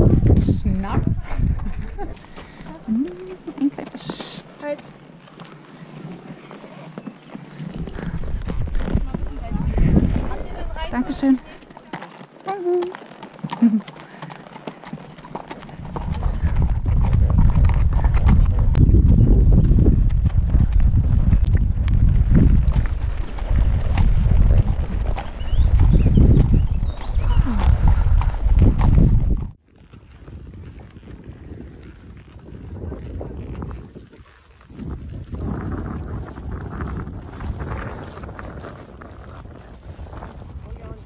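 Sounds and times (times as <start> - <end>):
low microphone rumble: 0.0 - 3.2, 7.6 - 11.6, 15.8 - 29.6, 34.7 - 41.0
hooves on gravel: 0.0 - 41.0.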